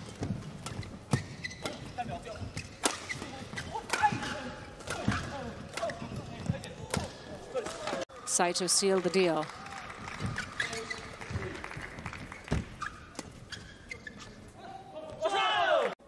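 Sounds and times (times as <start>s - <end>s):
shoes squeaking on court: 0.0s - 8.0s, 10.1s - 15.3s
rackets hitting shuttlecock: 2.5s - 6.2s.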